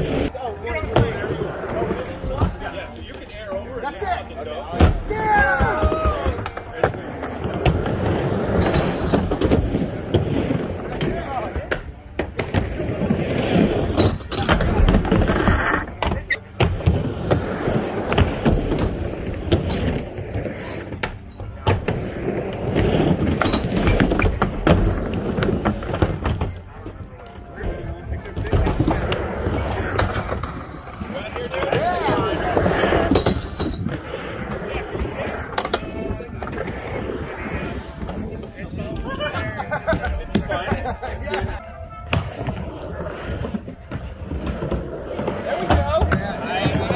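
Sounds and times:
skateboards rolling on ramp: 0.0s - 46.9s.

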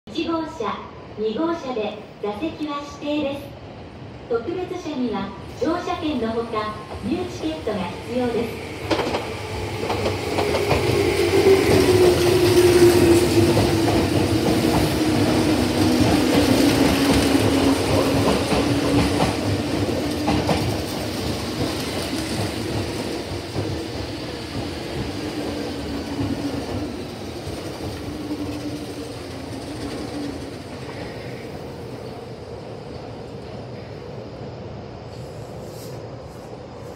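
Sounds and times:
train wheels clacking over rail joints: 8.8s - 31.2s.

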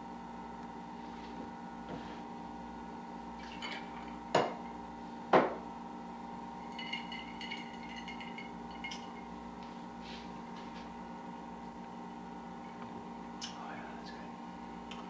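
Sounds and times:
steady background hum: 0.0s - 15.0s
glasses clinking: 3.4s - 4.7s, 6.6s - 9.3s.

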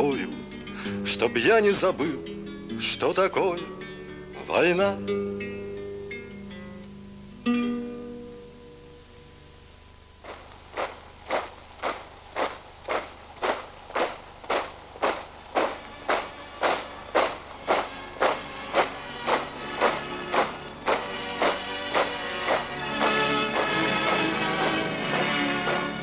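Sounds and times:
acoustic guitar strumming: 0.0s - 26.0s.

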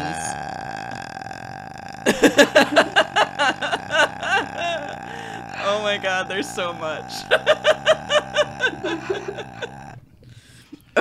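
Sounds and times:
person burping: 0.0s - 11.0s.

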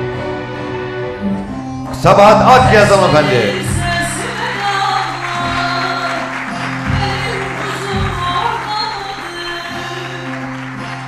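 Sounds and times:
music with long held notes: 0.0s - 11.0s.

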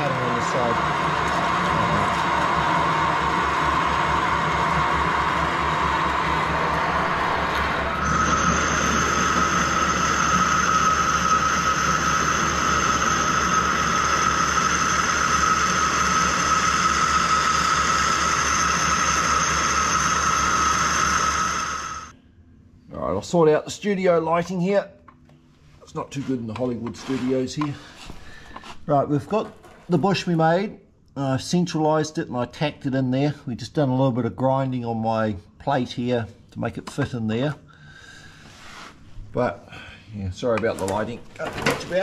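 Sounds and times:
boring tool high whine: 0.0s - 22.1s
metal lathe running: 0.0s - 22.1s
twist drill cutting steel: 0.0s - 22.1s.

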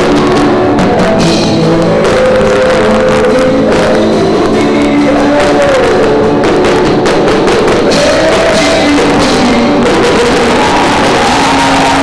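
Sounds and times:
drum kit: 0.0s - 12.0s
electric guitar: 0.0s - 12.0s
man singing into a microphone: 0.0s - 12.0s.

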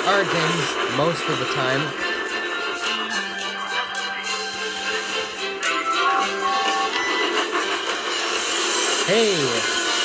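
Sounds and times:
steam locomotive rushing and hissing: 0.0s - 3.6s, 4.2s - 10.0s.

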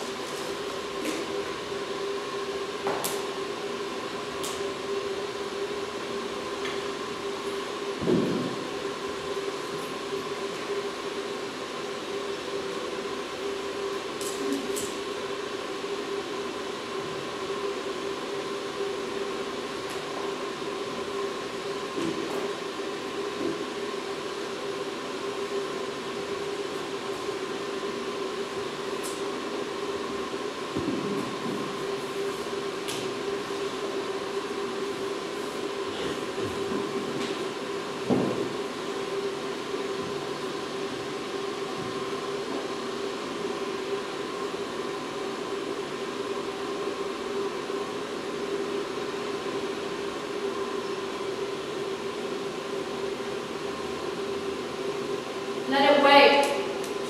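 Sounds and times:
two-tone droning hum: 0.0s - 57.0s.

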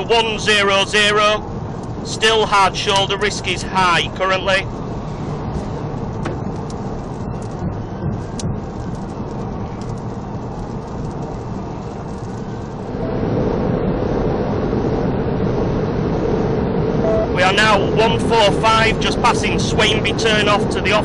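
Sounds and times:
road and tyre noise in car: 0.0s - 21.0s.

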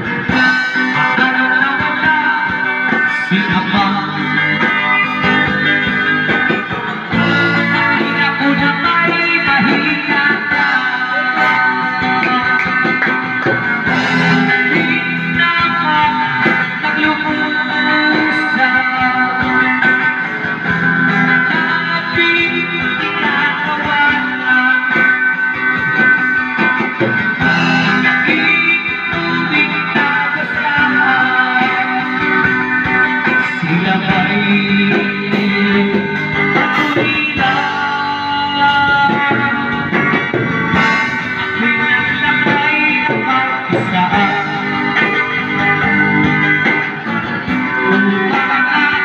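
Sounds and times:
electric guitar through speaker: 0.0s - 49.0s.

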